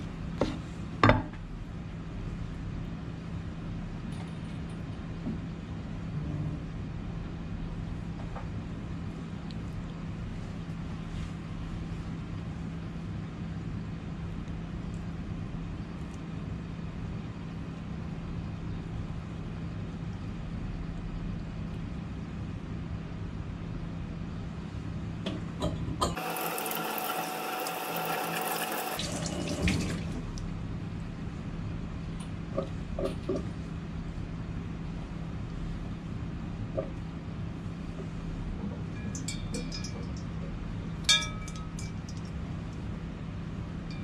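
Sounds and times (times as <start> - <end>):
low kitchen hum: 0.0 - 44.0
running water from a tap: 26.2 - 30.2.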